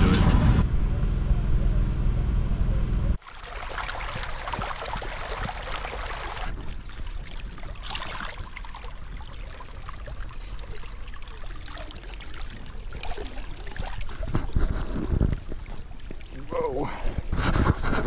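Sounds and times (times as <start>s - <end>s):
low droning hum: 0.0s - 3.2s
water running and splashing: 3.2s - 17.4s.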